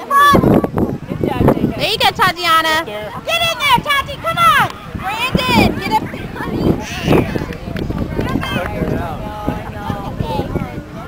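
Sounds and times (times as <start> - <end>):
wind rumble on microphone: 0.1 - 11.0.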